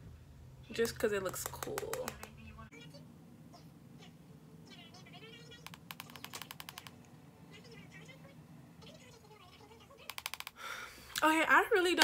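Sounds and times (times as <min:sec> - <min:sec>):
faint low room hum: 0:00.0 - 0:12.0
makeup brush tapping: 0:00.8 - 0:02.4.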